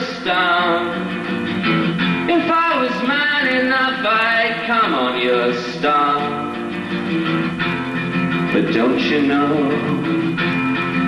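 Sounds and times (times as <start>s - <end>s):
man singing: 0.0s - 1.2s, 2.1s - 6.7s, 8.4s - 10.4s
acoustic guitar strumming: 0.0s - 11.0s.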